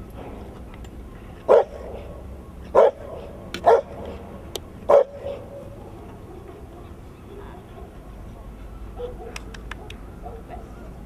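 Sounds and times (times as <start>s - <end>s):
dog barking: 1.5s - 2.1s, 2.8s - 4.0s, 4.9s - 6.9s, 9.0s - 10.6s.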